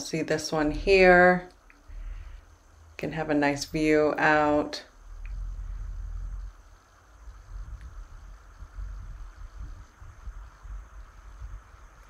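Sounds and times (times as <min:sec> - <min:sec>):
faint steady hiss: 0:00.0 - 0:12.0
microphone handling rumble: 0:04.9 - 0:12.0.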